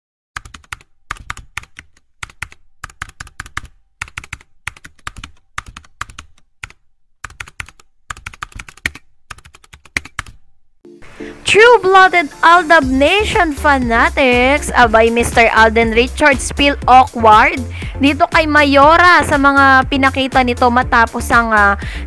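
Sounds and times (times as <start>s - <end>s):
keyboard key clicks: 0.4s - 10.4s.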